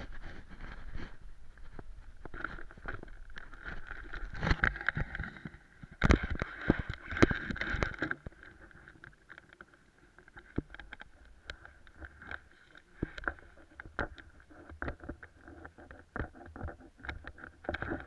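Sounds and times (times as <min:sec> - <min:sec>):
knocks and rubbing on helmet camera: 0:13.0 - 0:18.0.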